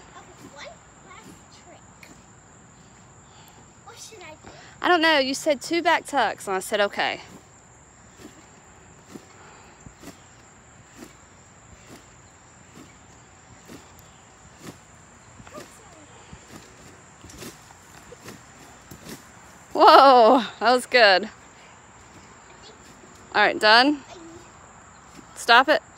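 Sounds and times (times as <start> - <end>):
feet thumping on trampoline: 0.0 - 4.6, 7.0 - 25.7.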